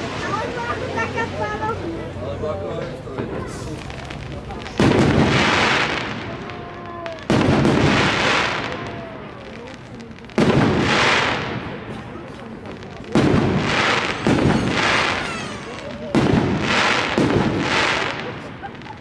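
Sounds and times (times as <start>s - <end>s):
fireworks bangs: 0.0s - 2.0s, 2.8s - 19.0s
fireworks crackle: 0.0s - 19.0s.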